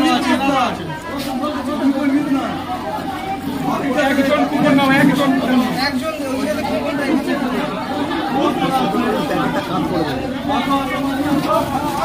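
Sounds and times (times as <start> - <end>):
indistinct chatter: 0.0 - 12.0.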